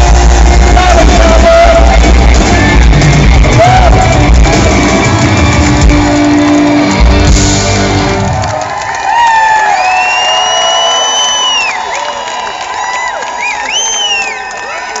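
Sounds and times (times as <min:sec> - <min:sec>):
rock band final chord: 0:00.0 - 0:08.5
crowd cheering: 0:00.0 - 0:15.0
long whistles: 0:09.8 - 0:12.7, 0:13.3 - 0:14.7.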